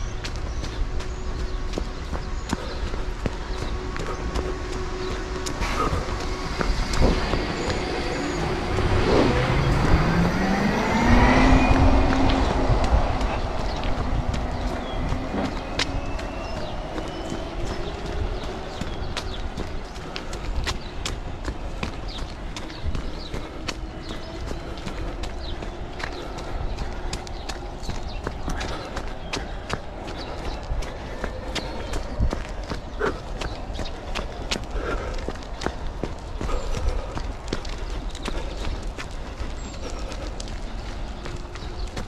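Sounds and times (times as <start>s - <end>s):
running footsteps on pavement: 0.0s - 42.0s
street traffic hum: 0.0s - 42.0s
vehicle engine passing: 1.4s - 35.4s.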